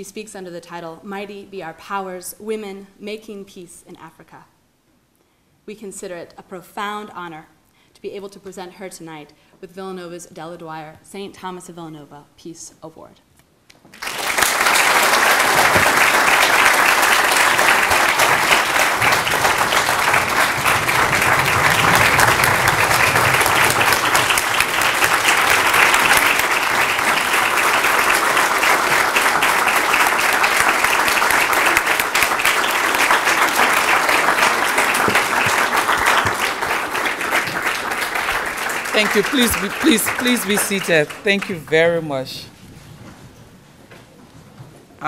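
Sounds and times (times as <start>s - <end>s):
large audience applauding: 13.9s - 42.1s.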